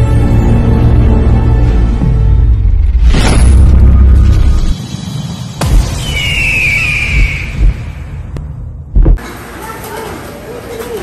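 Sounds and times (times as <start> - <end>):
music: 0.0 - 7.8
deep rumbling boom: 5.6 - 9.2
high whistling tone sliding down: 5.9 - 8.2
low thuds: 7.1 - 9.2.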